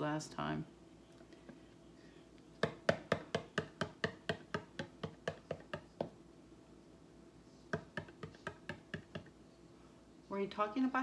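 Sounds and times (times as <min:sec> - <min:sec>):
fingers tapping plastic cup: 0:02.6 - 0:06.2, 0:07.7 - 0:09.3.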